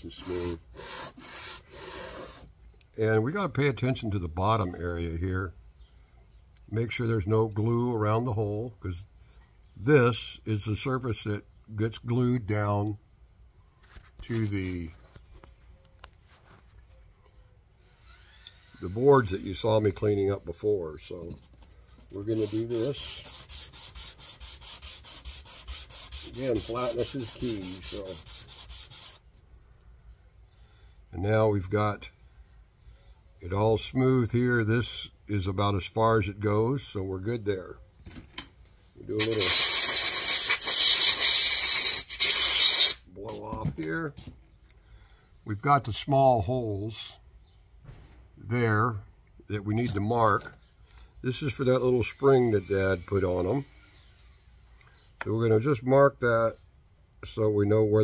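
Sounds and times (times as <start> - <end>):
wood block scratching on sandpaper: 0.0 - 2.5, 21.2 - 29.3, 39.2 - 43.0
man speaking: 3.0 - 5.5, 22.1 - 23.2, 26.3 - 28.3.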